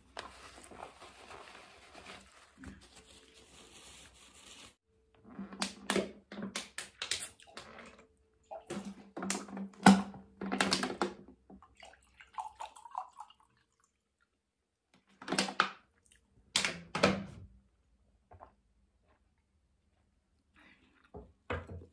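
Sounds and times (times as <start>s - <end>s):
water pouring into a glass: 11.7s - 14.1s.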